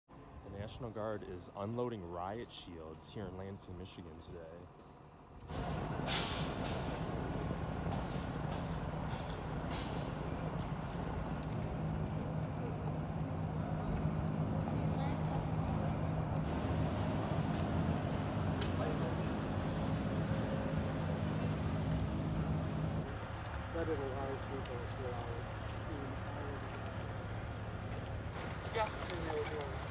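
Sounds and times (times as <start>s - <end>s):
street noise hiss: 0.1s - 29.9s
large vehicle engine idling: 5.4s - 29.9s.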